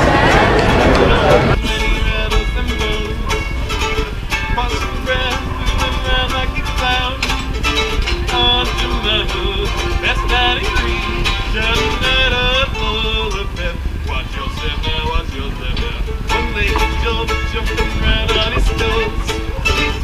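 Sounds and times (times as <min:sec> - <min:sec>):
banjo plucked notes: 0:00.0 - 0:20.0.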